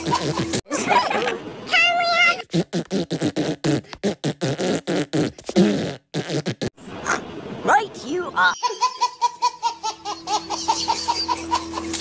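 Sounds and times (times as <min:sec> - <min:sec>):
cartoon fart sound effects: 0:00.0 - 0:00.7, 0:02.3 - 0:07.2.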